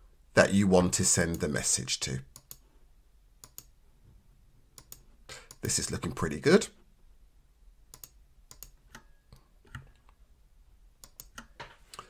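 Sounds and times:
computer mouse clicking: 0:02.3 - 0:02.6, 0:03.4 - 0:03.7, 0:04.8 - 0:05.7, 0:07.9 - 0:10.2, 0:11.0 - 0:12.0.

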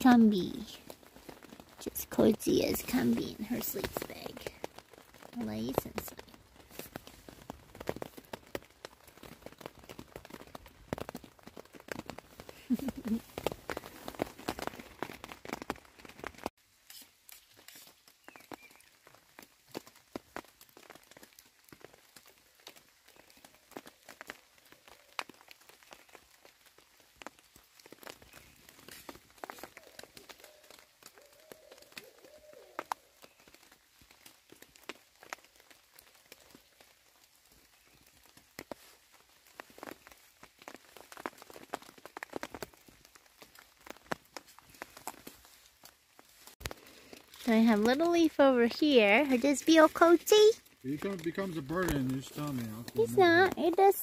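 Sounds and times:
rain dripping onto leaves: 0:00.0 - 0:54.0.

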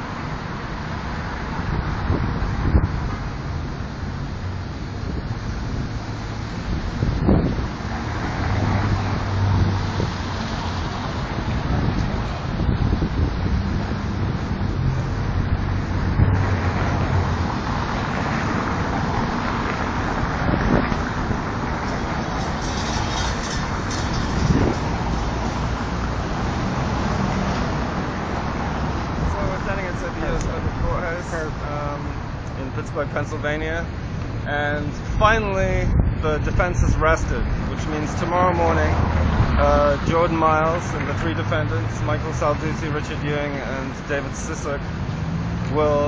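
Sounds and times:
city street traffic: 0:00.0 - 0:46.0
wind buffeting microphone: 0:01.2 - 0:41.0.

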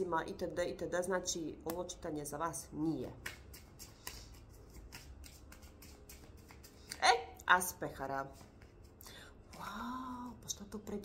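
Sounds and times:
cards rustling and flicking: 0:03.2 - 0:07.0.

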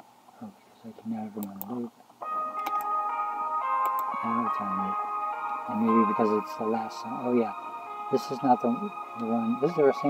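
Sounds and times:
music of sustained high tones: 0:02.2 - 0:10.0.

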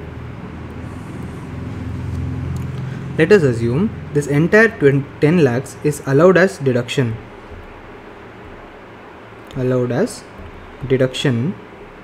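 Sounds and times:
faint hum: 0:00.0 - 0:12.0
low background rumble: 0:00.0 - 0:12.0.

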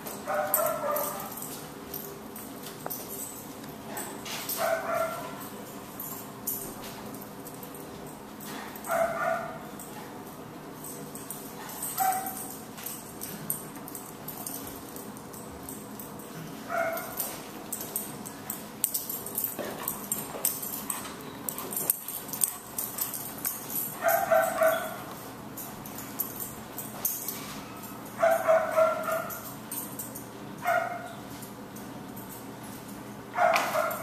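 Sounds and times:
steady low hum: 0:00.0 - 0:34.0
dog barking: 0:00.3 - 0:01.4, 0:04.6 - 0:05.4, 0:08.8 - 0:09.7, 0:12.0 - 0:12.5, 0:16.7 - 0:17.2, 0:24.0 - 0:25.0, 0:28.2 - 0:29.4, 0:30.6 - 0:31.1, 0:33.4 - 0:34.0.

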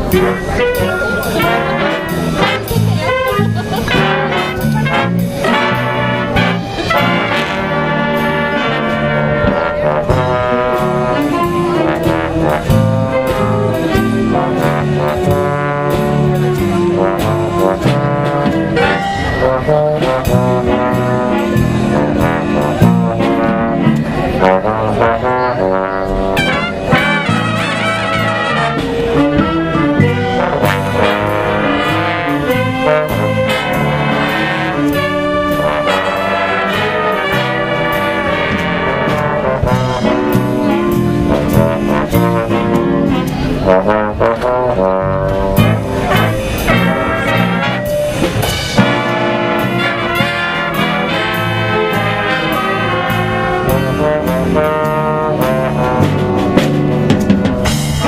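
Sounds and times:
drums: 0:00.0 - 0:58.0
jazz big band playing swing: 0:00.0 - 0:58.0
trombone solo: 0:00.0 - 0:58.0.

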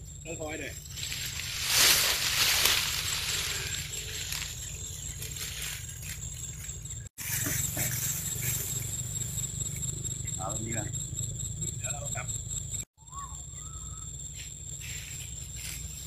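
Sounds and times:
dry grass rustling and swishing: 0:00.8 - 0:08.8, 0:14.8 - 0:16.0.

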